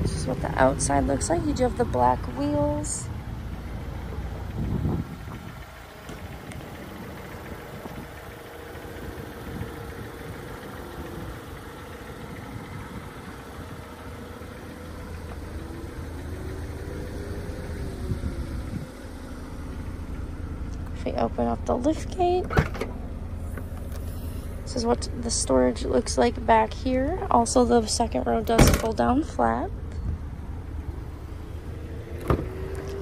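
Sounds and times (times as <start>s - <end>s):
car engine idling: 0.0s - 33.0s.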